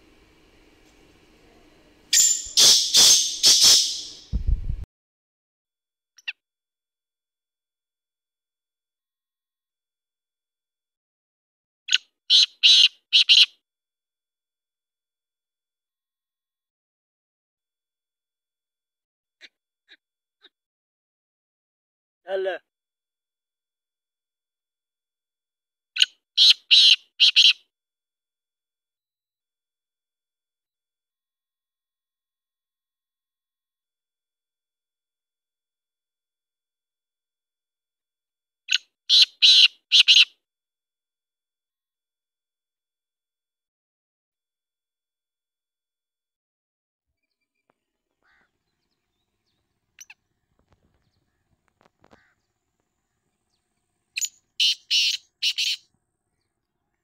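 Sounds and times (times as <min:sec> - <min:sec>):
bird calling harsh high notes: 0:02.1 - 0:04.3, 0:54.2 - 0:55.8
francolin calling: 0:02.1 - 0:04.3, 0:47.2 - 0:57.0.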